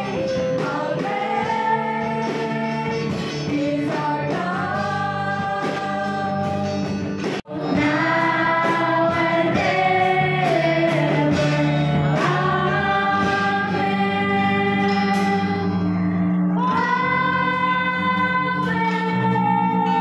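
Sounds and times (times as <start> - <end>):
voices singing a gospel hymn: 0.0 - 20.0.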